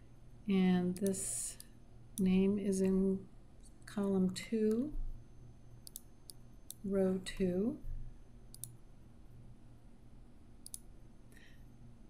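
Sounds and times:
computer mouse clicks: 5.8s - 7.5s, 8.5s - 8.8s, 10.6s - 10.9s.

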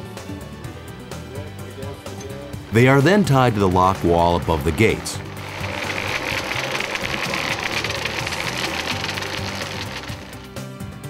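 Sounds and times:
background music: 0.0s - 11.0s
fast mechanical rattle: 4.0s - 10.6s.

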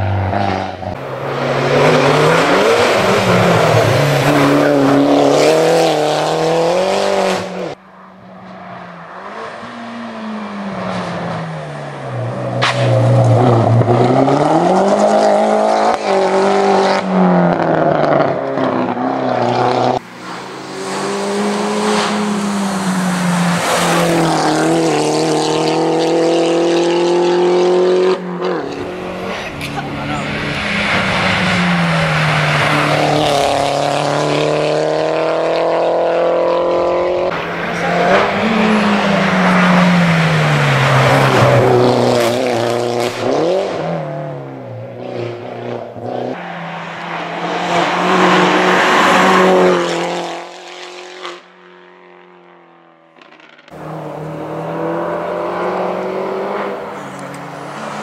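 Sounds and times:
race car engine revving: 0.0s - 7.8s, 9.0s - 51.8s, 53.2s - 58.0s.

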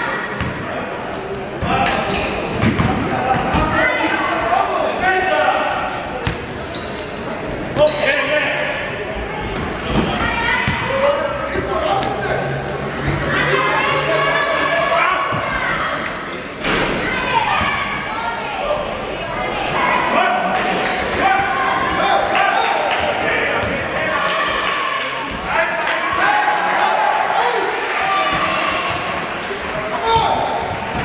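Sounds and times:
people shouting in echoing hall: 10.2s - 31.0s.

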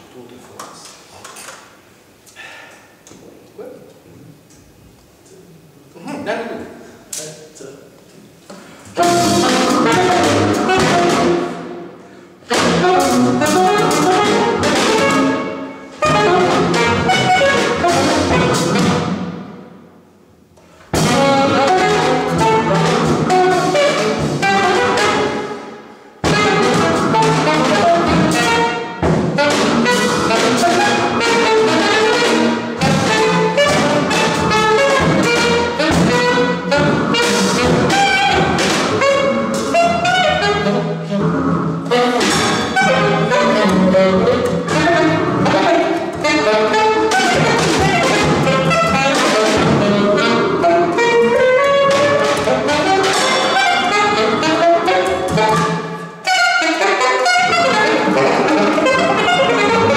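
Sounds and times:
free jazz trio playing: 8.9s - 19.8s, 20.7s - 59.9s.

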